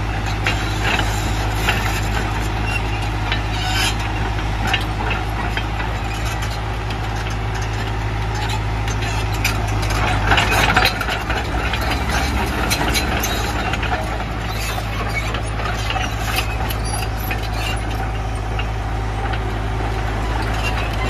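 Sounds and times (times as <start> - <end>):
excavator diesel engine idling: 0.0 - 21.0
road traffic noise: 0.0 - 21.0.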